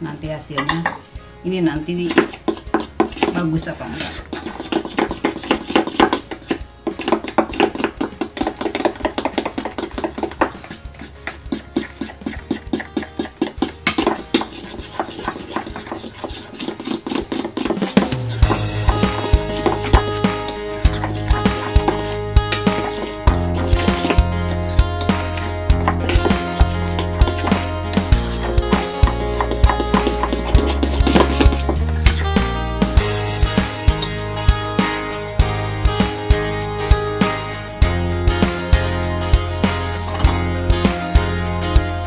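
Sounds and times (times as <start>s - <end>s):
background music with bass: 0.0s - 42.0s
spoon scraping metal bowl: 1.9s - 34.6s, 40.0s - 41.0s.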